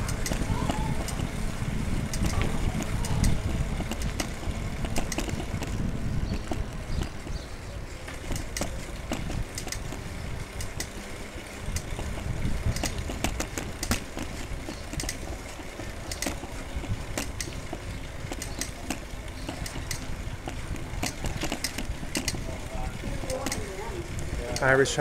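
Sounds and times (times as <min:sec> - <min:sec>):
wind rumble on microphone: 0:00.0 - 0:10.9, 0:11.6 - 0:25.0
footsteps on pavement: 0:00.0 - 0:24.6.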